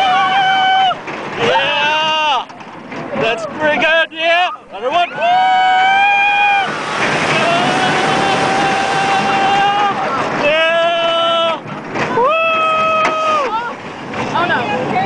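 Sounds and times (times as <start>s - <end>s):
riders screaming: 0.0s - 2.4s, 5.0s - 13.6s
roller coaster train rumbling: 0.0s - 15.0s
wind rushing across microphone: 5.3s - 15.0s.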